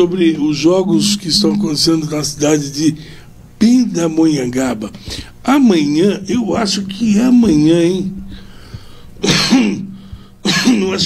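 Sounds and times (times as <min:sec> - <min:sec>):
man speaking: 0:00.0 - 0:08.2
man clearing throat coughing: 0:09.2 - 0:11.0.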